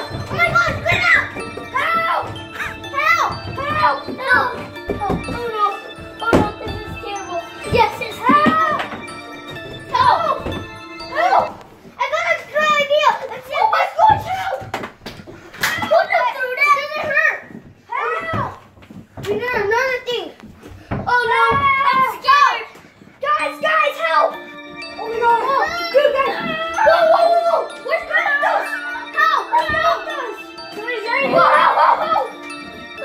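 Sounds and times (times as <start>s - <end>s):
children shrieking and yelling: 0.0s - 5.8s, 6.4s - 9.1s, 9.9s - 14.7s, 15.6s - 18.6s, 20.9s - 24.3s, 25.0s - 32.5s
background music: 0.0s - 14.7s, 20.8s - 33.0s.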